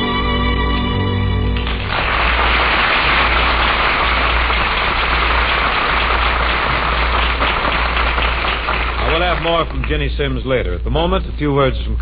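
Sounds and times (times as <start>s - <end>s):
audience applauding: 1.5s - 10.5s.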